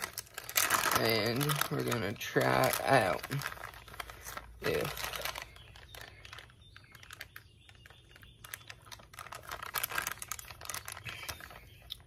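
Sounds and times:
plastic bag crinkling and clicking: 0.0s - 12.0s.

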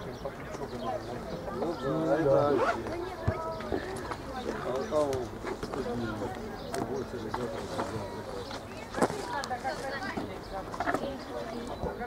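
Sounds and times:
several voices chattering: 0.0s - 12.0s.

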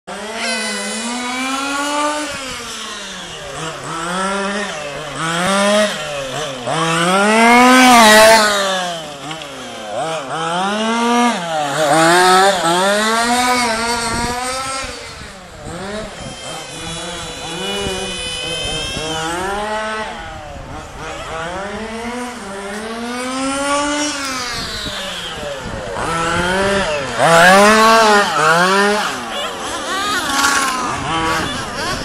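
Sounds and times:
rc car engine revving: 0.1s - 32.0s.

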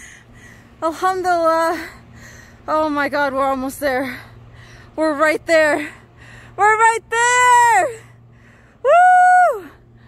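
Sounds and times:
woman whooping: 8.8s - 9.8s.

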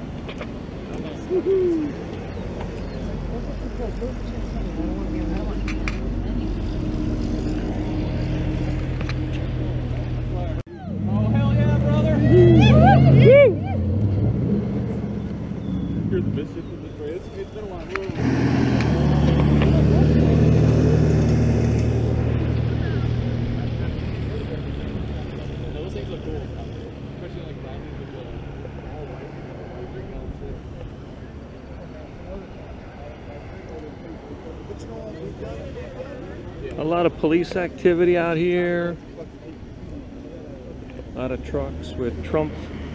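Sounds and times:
vehicles driving past: 0.0s - 42.9s
loud vehicle passing: 1.0s - 37.4s, 40.5s - 42.9s
loud shouting voices: 10.7s - 14.0s.

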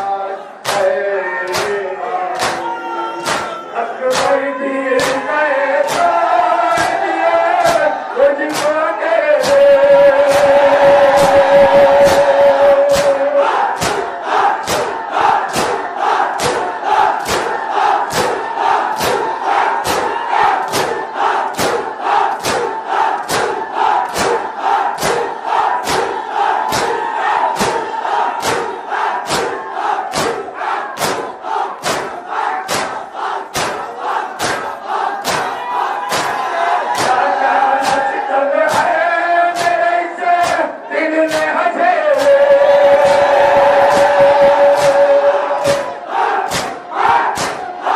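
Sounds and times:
crowd chanting: 0.0s - 47.9s
rhythmic chest-beating: 0.0s - 47.9s.

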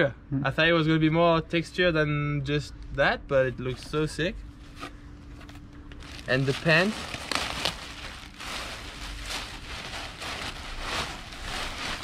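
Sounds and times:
plastic bag rustling: 5.4s - 12.0s.

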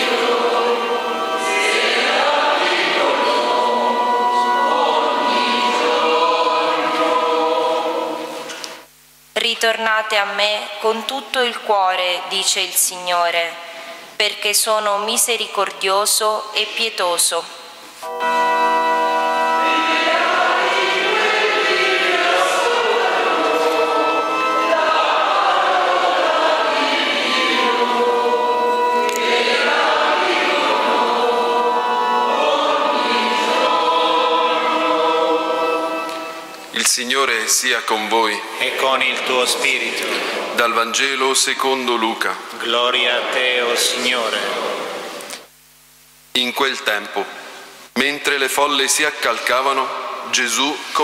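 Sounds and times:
organ accompaniment: 0.0s - 8.4s, 18.0s - 37.0s
church choir singing: 0.0s - 8.8s, 18.0s - 45.1s.

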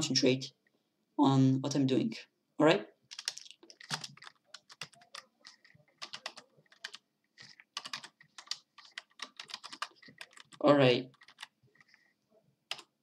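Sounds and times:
computer keyboard typing: 3.1s - 12.0s, 12.7s - 13.0s.

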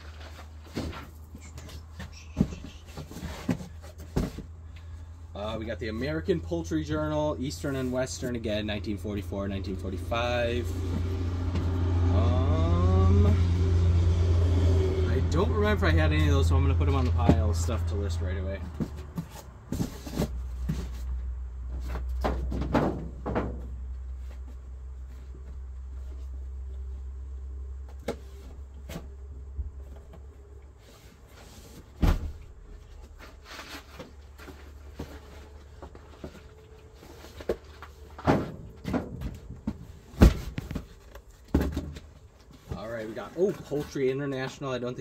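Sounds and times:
cardboard boxes scraping and rustling: 0.0s - 4.6s, 18.6s - 21.2s, 30.8s - 32.0s, 32.8s - 44.4s
low steady hum: 0.0s - 45.0s
books thumping down: 40.1s - 42.1s.

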